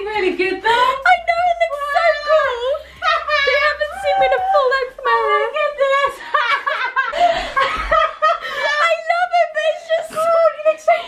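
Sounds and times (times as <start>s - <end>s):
people laughing: 0.7s - 9.2s.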